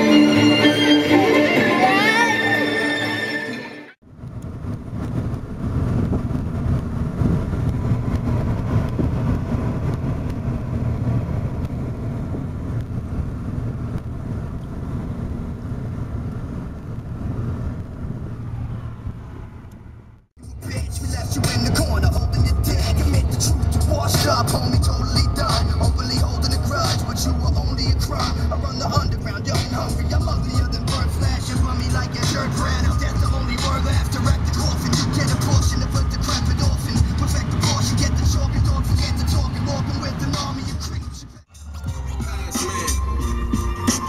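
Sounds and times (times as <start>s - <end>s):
car road noise rumble: 4.0s - 44.0s.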